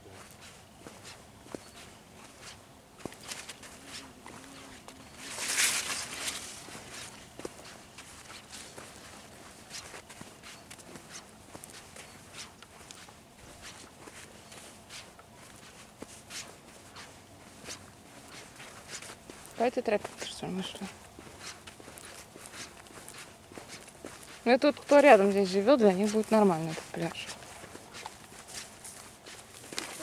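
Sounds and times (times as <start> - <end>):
footsteps on sand and grass: 0.0 - 30.0.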